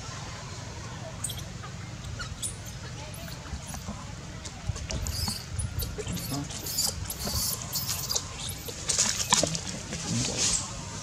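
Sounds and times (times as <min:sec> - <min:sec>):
baby monkey squeaking: 0:01.2 - 0:03.9, 0:04.9 - 0:09.5.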